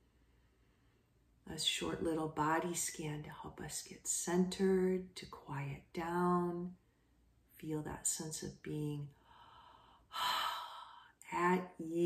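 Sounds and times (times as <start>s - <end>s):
woman breathing in and sighing: 9.2s - 11.2s.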